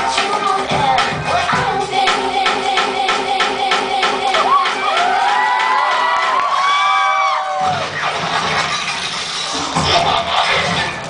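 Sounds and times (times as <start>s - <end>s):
audience cheering and whooping: 4.3s - 8.2s.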